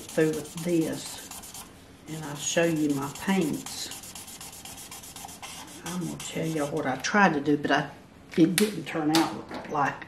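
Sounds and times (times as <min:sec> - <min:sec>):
marker scratching on paper: 0:00.0 - 0:06.9.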